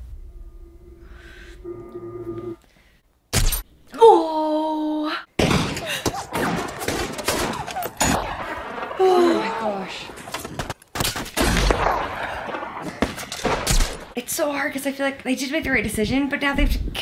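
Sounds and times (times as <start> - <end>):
person shouting: 4.0 - 5.1, 9.0 - 10.0
rapid rifle shots: 5.4 - 9.0
heavy deep gunshots: 5.4 - 14.1.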